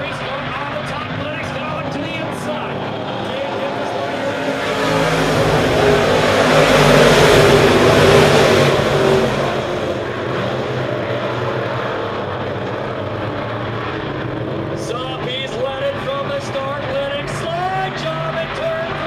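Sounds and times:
race car engines roaring by: 0.0 - 19.0.

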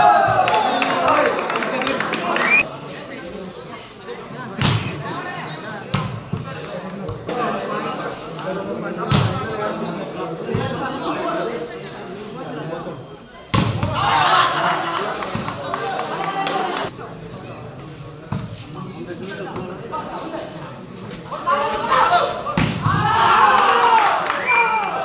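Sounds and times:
crowd shouting: 0.0 - 2.6, 13.8 - 15.0, 21.4 - 25.0.

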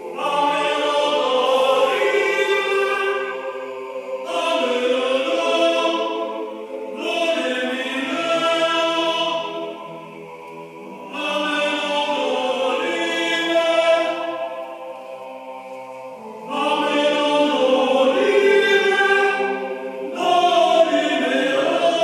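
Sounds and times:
male choir chanting: 0.0 - 22.0.

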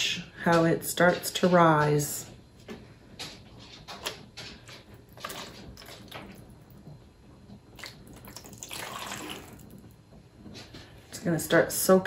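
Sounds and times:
water sounds: 7.8 - 9.9.

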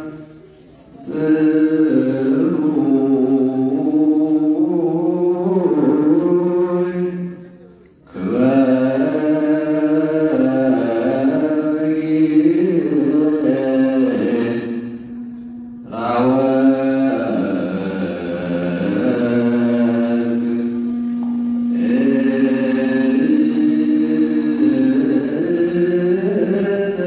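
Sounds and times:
men chanting hymn: 1.0 - 7.5, 8.1 - 15.1, 15.8 - 27.0.

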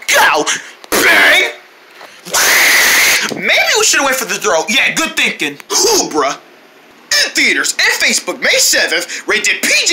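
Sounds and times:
person screaming: 2.3 - 3.3
person talking: 2.3 - 6.4, 7.1 - 9.9.

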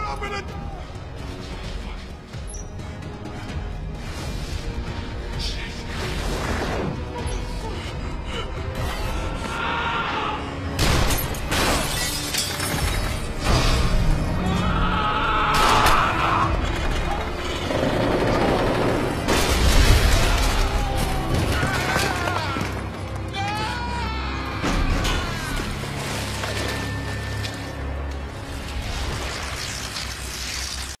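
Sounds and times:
dramatic film score: 0.0 - 31.0.

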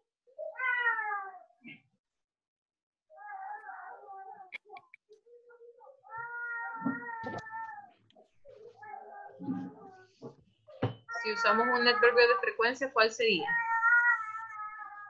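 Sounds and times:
cat meowing over video call: 0.4 - 1.8, 3.1 - 4.8, 5.8 - 8.0, 8.6 - 10.4, 11.0 - 12.6, 13.2 - 15.0.

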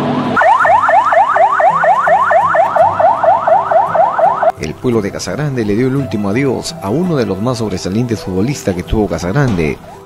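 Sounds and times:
electronic siren-like whooping wail: 0.0 - 4.5
background music: 0.0 - 10.0.

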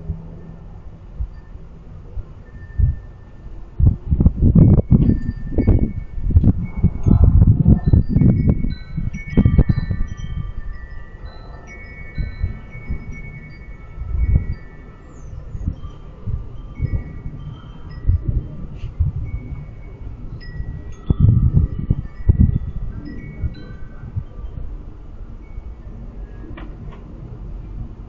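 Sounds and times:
low gusty rumble: 0.0 - 28.0
chimes ringing: 4.5 - 26.6.

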